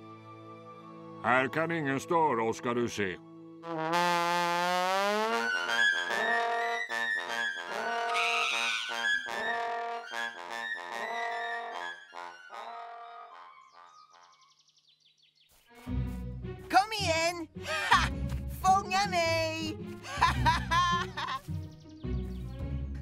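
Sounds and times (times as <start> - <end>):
trombone and trumpet playing: 3.6 - 14.0.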